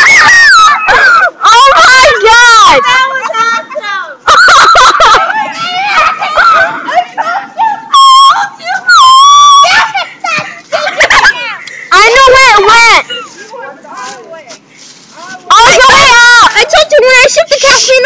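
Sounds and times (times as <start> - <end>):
loud shout: 0.0 - 13.1, 15.5 - 17.0
girls squealing and shrieking: 0.0 - 14.3, 15.3 - 18.0.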